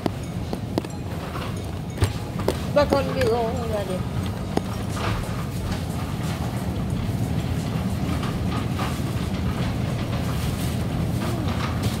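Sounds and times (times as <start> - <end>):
cart basket rattling: 0.0 - 12.0
cart wheels rumbling on tiles: 0.0 - 12.0.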